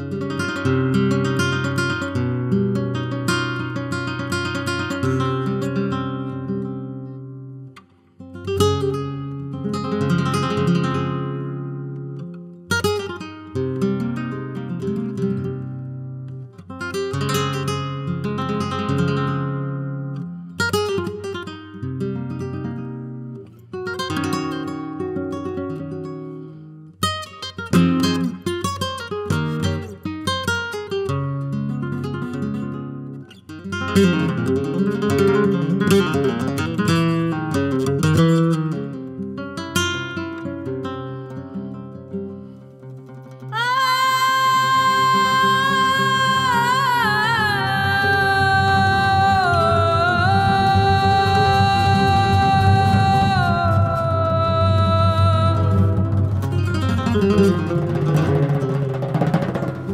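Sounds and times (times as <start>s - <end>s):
flamenco guitar playing: 0.0s - 59.9s.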